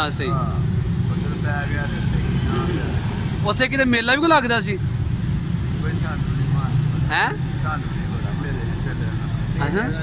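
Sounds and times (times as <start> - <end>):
street background rumble: 0.0 - 10.0.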